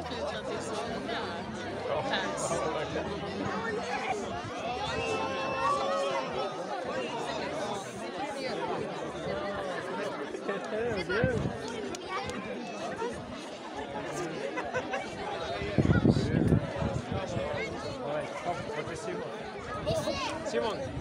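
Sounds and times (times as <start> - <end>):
crowd of overlapping voices: 0.0 - 21.0.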